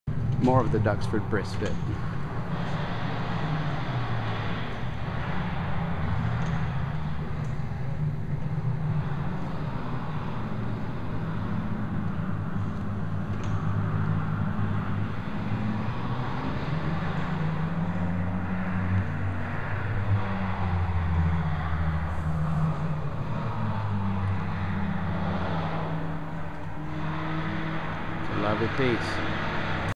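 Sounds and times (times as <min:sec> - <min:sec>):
low mechanical rumble: 0:00.0 - 0:29.9.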